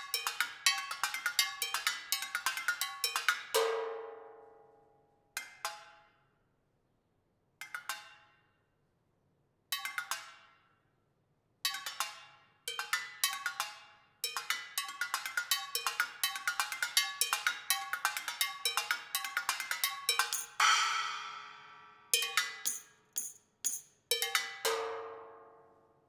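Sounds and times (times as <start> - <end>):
metal percussion struck with drumsticks: 17.4 - 25.4.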